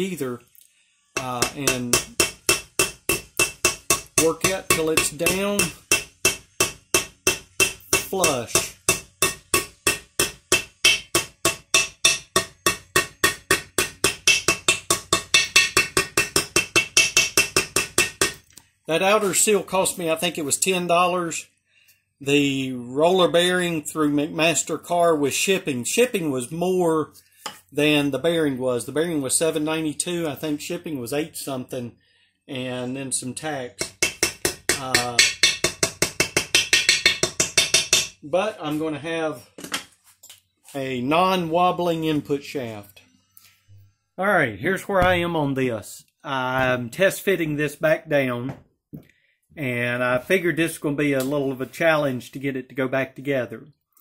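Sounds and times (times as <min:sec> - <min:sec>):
rapid hammer taps on metal: 0:01.2 - 0:18.4, 0:33.8 - 0:38.1.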